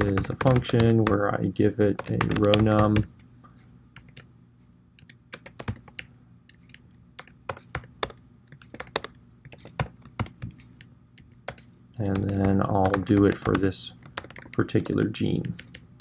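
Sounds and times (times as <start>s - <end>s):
computer keyboard typing: 0.0s - 1.2s, 1.9s - 3.1s, 4.0s - 4.3s, 5.0s - 16.0s
faint low hum: 0.0s - 16.0s.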